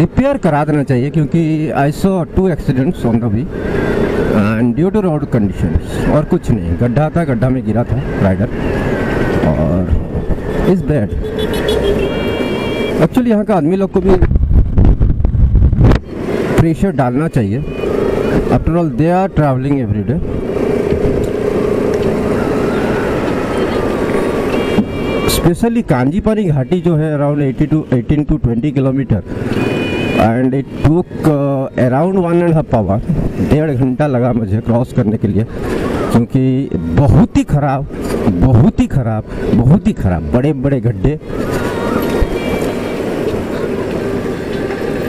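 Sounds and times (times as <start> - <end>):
road and wind noise: 0.0 - 45.0
wind rush on microphone: 7.8 - 11.3, 13.9 - 16.8, 20.2 - 25.4, 33.0 - 33.6.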